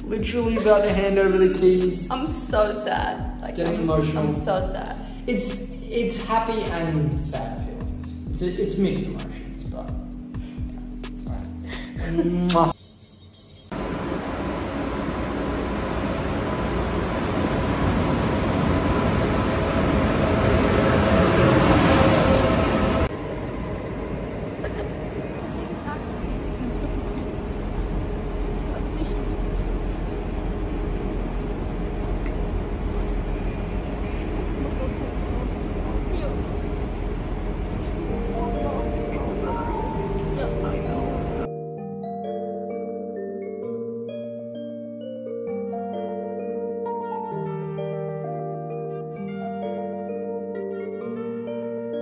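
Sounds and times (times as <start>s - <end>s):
train rumbling and hissing: 13.8s - 41.5s
platform ambience with voices: 37.8s - 41.5s.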